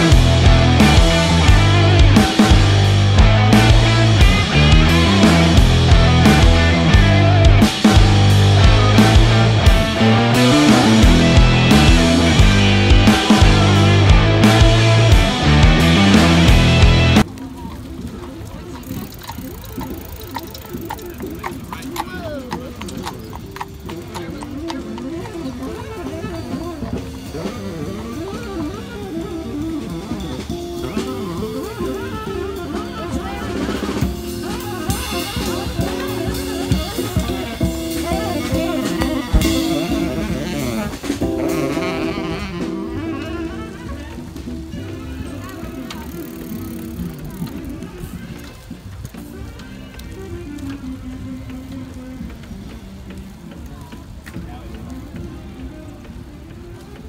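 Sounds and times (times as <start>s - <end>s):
upright bass: 0.0s - 17.3s, 29.7s - 51.0s
drum kit: 0.0s - 17.6s, 23.0s - 57.0s.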